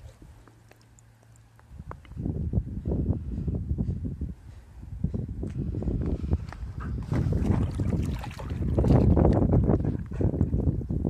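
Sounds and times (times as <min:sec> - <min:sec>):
wind buffeting microphone: 0:01.7 - 0:11.0
dog wading in water: 0:06.8 - 0:10.0.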